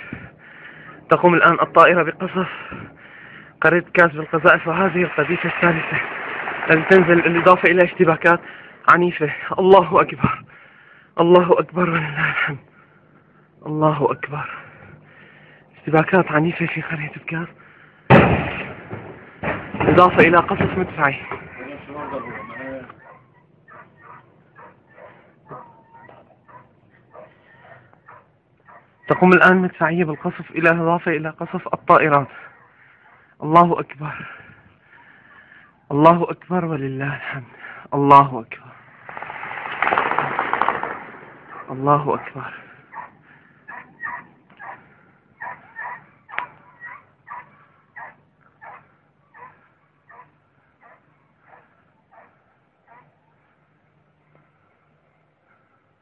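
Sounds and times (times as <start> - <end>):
sharp crack: 4.4 - 8.7, 18.1 - 22.0, 39.0 - 42.7
animal calling: 21.2 - 29.4, 41.5 - 53.4.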